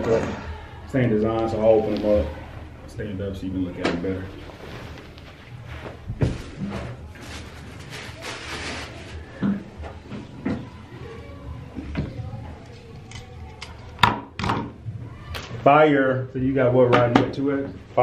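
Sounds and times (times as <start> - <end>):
fabric rustling: 4.2 - 9.4.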